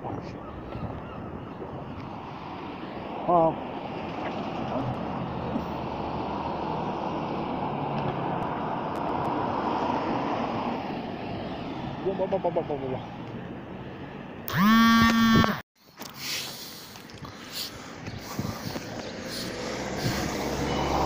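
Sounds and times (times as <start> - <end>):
street traffic noise: 0.0 - 21.0
car passing close by: 2.2 - 14.2, 18.4 - 21.0.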